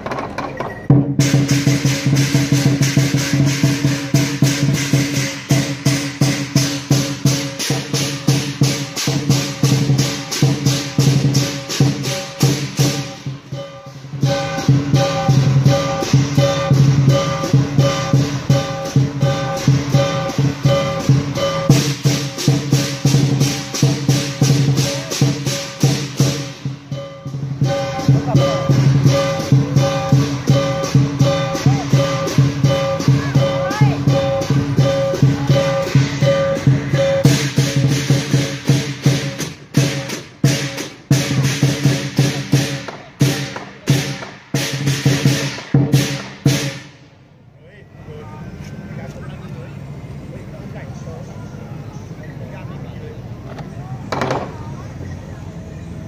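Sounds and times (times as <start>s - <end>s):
large drum beating: 0.0s - 47.2s
cymbals crashing: 0.9s - 47.4s
gong: 1.2s - 47.0s.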